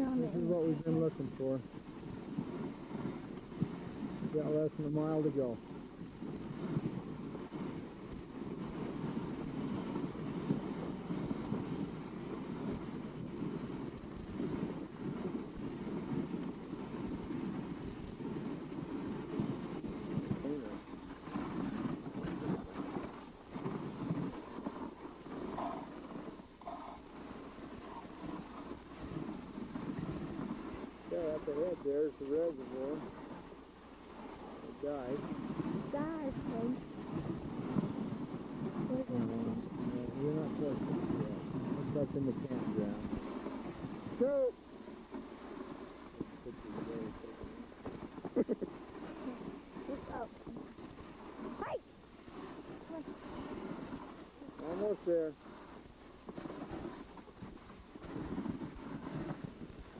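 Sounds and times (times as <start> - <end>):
dog sled moving over snow: 0.0 - 59.9
wind on microphone: 0.0 - 59.9.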